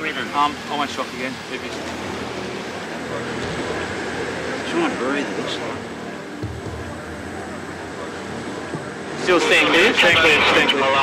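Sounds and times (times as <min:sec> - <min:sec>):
faint voices murmuring: 0:00.0 - 0:11.0
outdoor background rush: 0:00.0 - 0:11.0.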